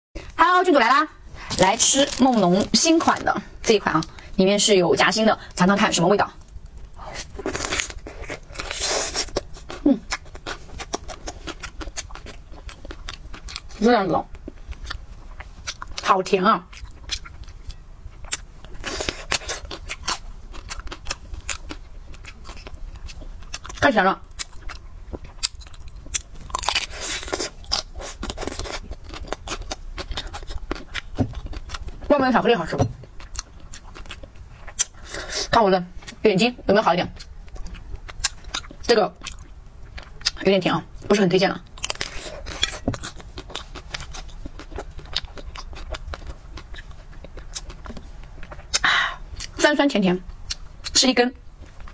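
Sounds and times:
chocolate shell crunching while chewing: 6.8 - 13.8, 16.7 - 32.0.

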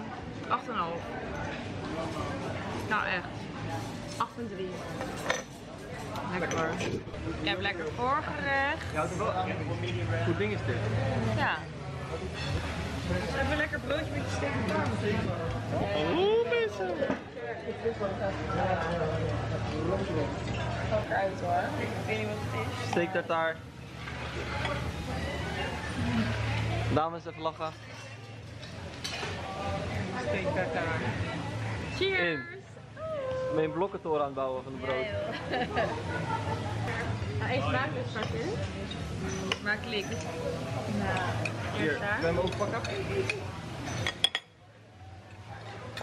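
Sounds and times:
faint voices of diners: 0.0 - 46.0.

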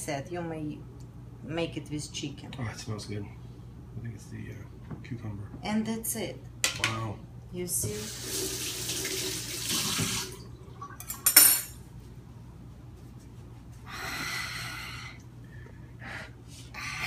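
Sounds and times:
faucet running into metal sink: 7.9 - 11.1
hands rubbed in paper towel: 12.7 - 13.8.

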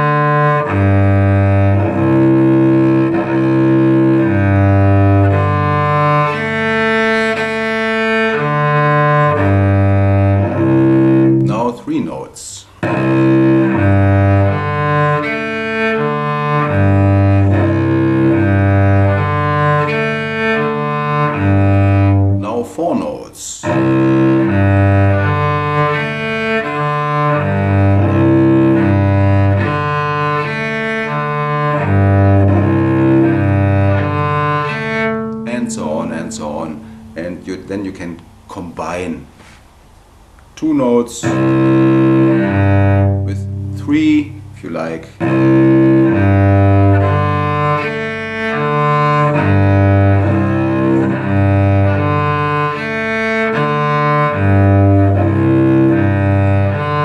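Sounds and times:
cello bowing open strings: 0.0 - 57.0.

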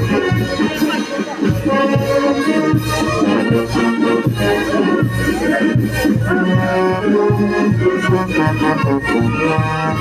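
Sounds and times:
wind instruments playing melody: 0.0 - 10.0.

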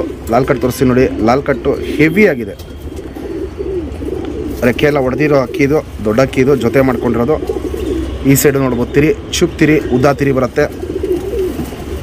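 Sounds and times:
man talking: 0.0 - 2.7, 4.6 - 7.5, 8.1 - 10.8
pigeons cooing: 0.0 - 8.9, 9.8 - 12.0.

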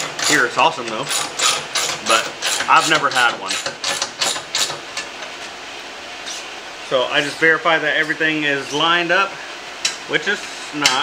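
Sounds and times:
ventilation hiss: 0.0 - 11.0
voice: 0.2 - 1.1, 2.0 - 3.6, 6.9 - 9.4, 10.1 - 11.0.

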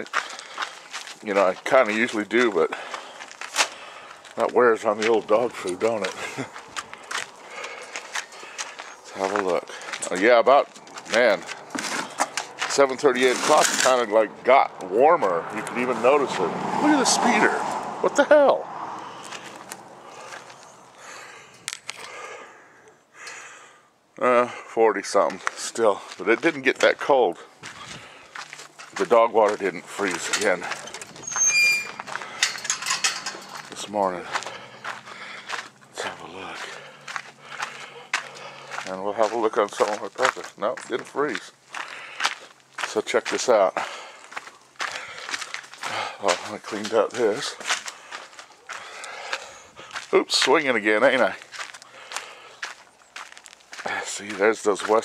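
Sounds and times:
footsteps on dry dirt: 0.0 - 17.8, 19.0 - 22.0, 25.1 - 55.0.

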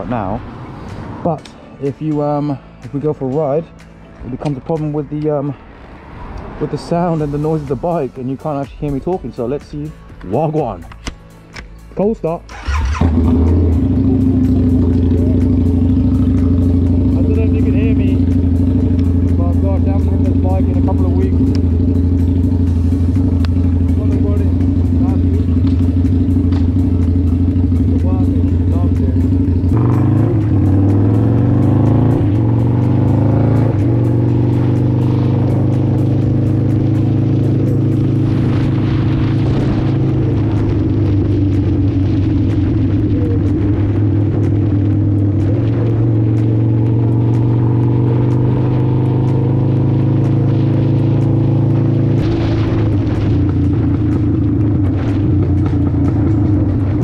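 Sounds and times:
motorcycle engine: 12.5 - 57.0.

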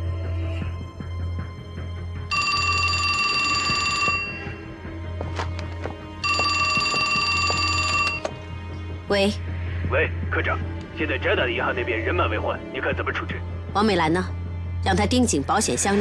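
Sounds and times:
low background music: 0.0 - 16.0
telephone bell ringing: 2.3 - 4.7, 6.2 - 8.3.

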